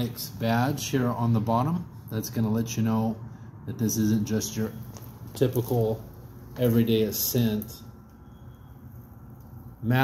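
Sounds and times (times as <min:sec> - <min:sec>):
man speaking: 0:00.0 - 0:04.8, 0:05.4 - 0:07.9
faint background hum: 0:00.0 - 0:10.0.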